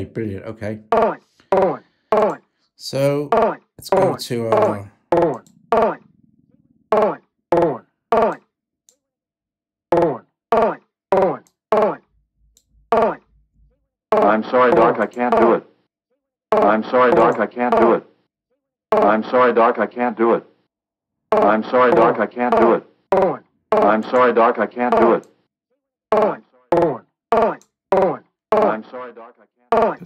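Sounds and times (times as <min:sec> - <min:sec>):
sampled spoken phrase: 0:00.0 - 0:04.9, 0:14.2 - 0:15.6, 0:16.6 - 0:18.0, 0:19.0 - 0:20.4, 0:21.4 - 0:25.2, 0:26.1 - 0:30.0.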